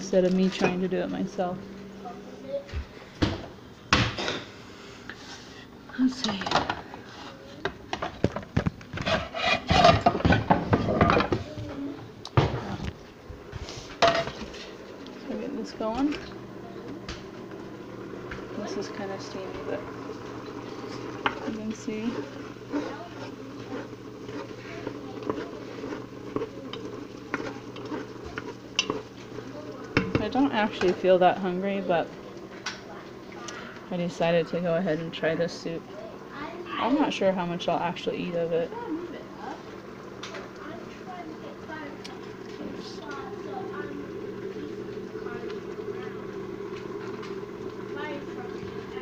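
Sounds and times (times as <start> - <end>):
utensil stirring in pot: 6.9 - 11.4, 13.5 - 49.0
soup sizzling with pops: 15.9 - 33.9, 35.2 - 49.0.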